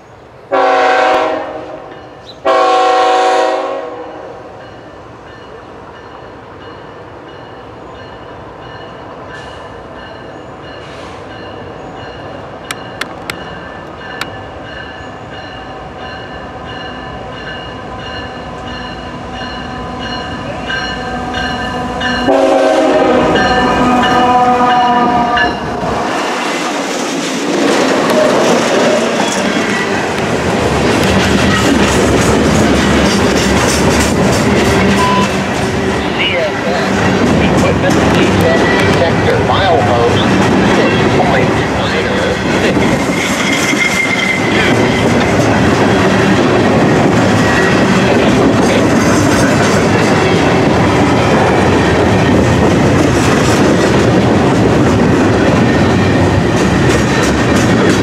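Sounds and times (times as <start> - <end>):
diesel locomotives approaching: 0.0 - 58.0
locomotive air horn: 0.5 - 4.5, 21.2 - 25.6.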